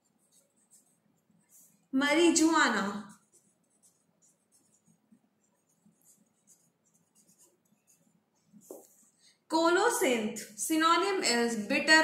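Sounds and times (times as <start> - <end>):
marker scratching on paper: 0.0 - 9.2.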